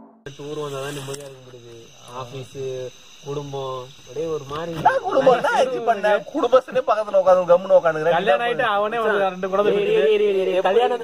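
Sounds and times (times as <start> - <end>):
crickets chirring: 0.2 - 11.0
men talking: 0.3 - 11.0.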